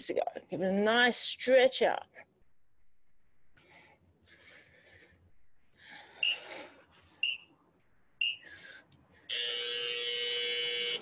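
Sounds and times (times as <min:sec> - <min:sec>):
long steady buzzer: 0:09.3 - 0:11.0.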